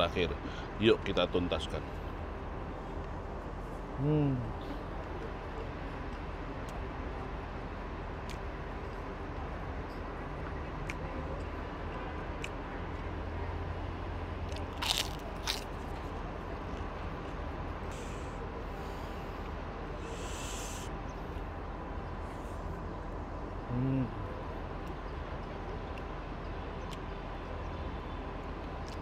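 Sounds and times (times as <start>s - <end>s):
low street background hum: 0.0s - 29.0s
cracker crunching: 14.4s - 16.0s.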